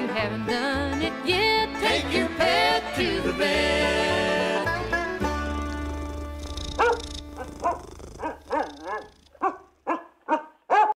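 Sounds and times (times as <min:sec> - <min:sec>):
banjo music: 0:00.0 - 0:07.5
dog barking: 0:06.5 - 0:10.9.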